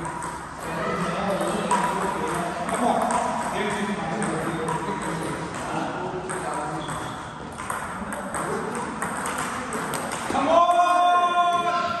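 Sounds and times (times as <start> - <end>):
table tennis ball clicking: 6.3 - 10.3.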